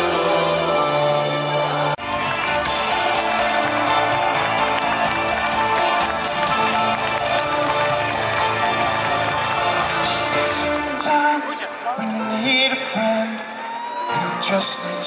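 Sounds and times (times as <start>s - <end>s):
live pop-rock band music: 0.0s - 15.0s.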